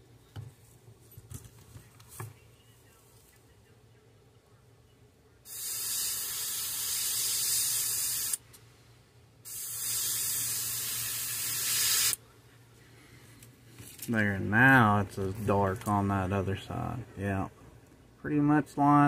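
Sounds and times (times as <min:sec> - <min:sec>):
airbrush spraying hiss: 0:05.5 - 0:08.4, 0:09.4 - 0:12.2.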